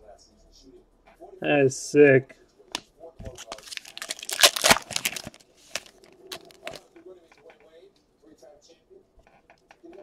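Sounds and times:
plastic crinkling: 3.2 - 6.8.

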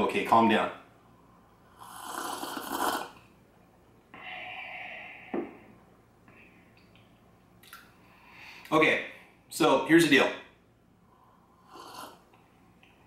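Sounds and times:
person slurping coffee: 1.7 - 3.2, 11.7 - 12.3.

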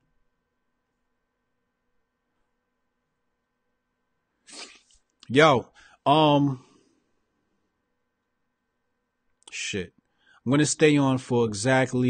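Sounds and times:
sharp intake of breath: 4.5 - 4.9, 5.7 - 6.0.

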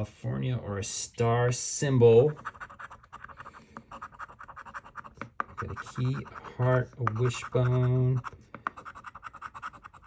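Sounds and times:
coin scratching ticket: 2.4 - 6.4, 7.1 - 10.0.

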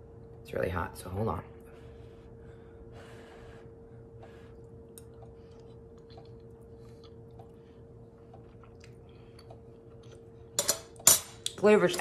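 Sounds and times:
faint hum: 0.0 - 12.0
person chewing: 4.6 - 10.6.

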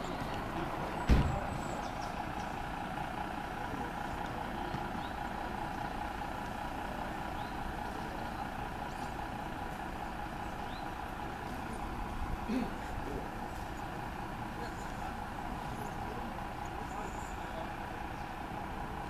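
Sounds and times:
diesel engines running: 0.0 - 19.0
loud thump: 1.0 - 1.5.

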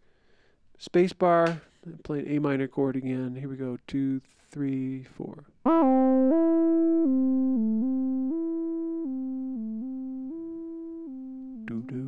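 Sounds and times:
synthesizer arpeggio: 5.7 - 12.0.

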